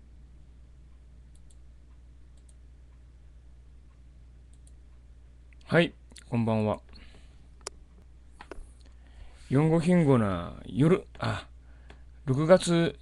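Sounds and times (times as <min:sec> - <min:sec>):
low electrical hum: 0:00.0 - 0:13.0
faint clicks: 0:00.9 - 0:03.0, 0:03.9 - 0:07.8
man speaking into microphone: 0:05.7 - 0:06.9, 0:09.5 - 0:11.5, 0:12.2 - 0:13.0.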